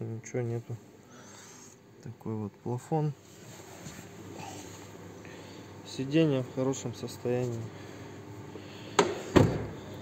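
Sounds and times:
car door closing thud: 9.0s - 9.8s.

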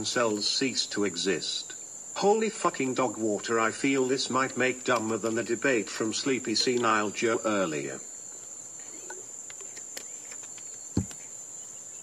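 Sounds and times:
crickets trilling: 0.0s - 12.0s
faint clicks: 9.1s - 11.3s
dull thump: 10.9s - 11.2s.

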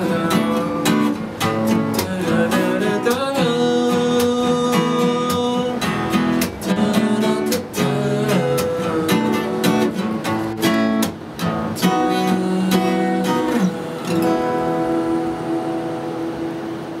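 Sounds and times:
acoustic guitar strumming chords: 0.0s - 17.0s.

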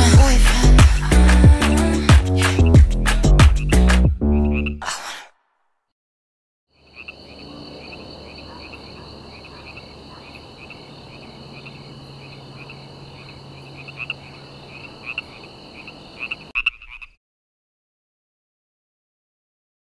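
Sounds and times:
frogs calling: 3.6s - 4.8s, 6.7s - 17.2s.

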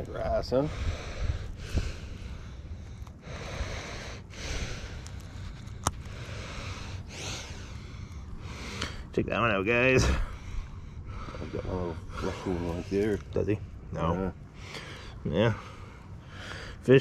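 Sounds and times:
person breathing close to microphone: 0.6s - 9.1s, 10.1s - 13.0s.

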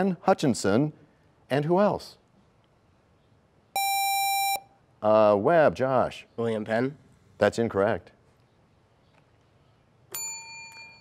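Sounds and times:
electronic buzzer tone: 3.8s - 4.6s.

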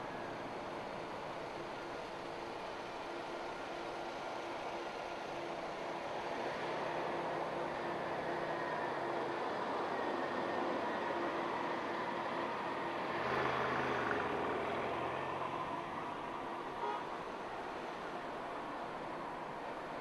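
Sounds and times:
cars moving slowly: 0.0s - 20.0s.

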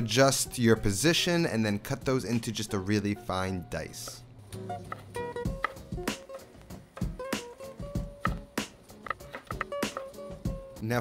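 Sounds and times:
guitar music: 2.1s - 10.8s
knife chopping on wooden board: 8.0s - 10.1s.

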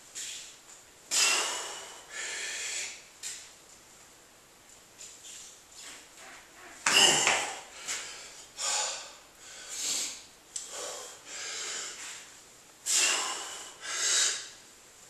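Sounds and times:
man breathing forcefully: 1.1s - 3.1s, 6.9s - 14.6s.

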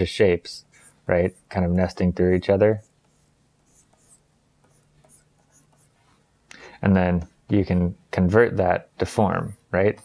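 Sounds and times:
stylus scratching on tablet: 0.6s - 6.2s, 9.3s - 10.0s.

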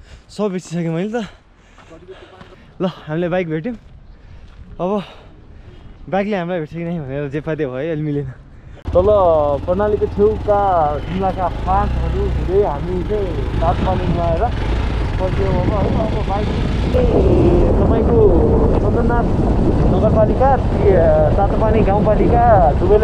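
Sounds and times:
voices talking: 4.8s - 23.0s
motorcycle engine and wind rumble: 8.8s - 23.0s.

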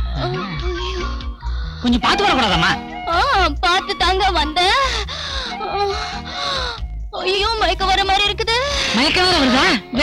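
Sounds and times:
background film music: 0.0s - 10.0s.

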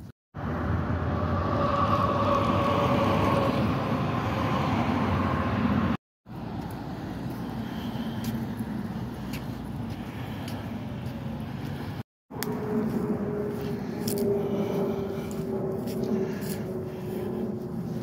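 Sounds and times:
road traffic noise: 0.0s - 18.0s
loud passing vehicle whine: 0.4s - 8.1s, 12.3s - 18.0s.

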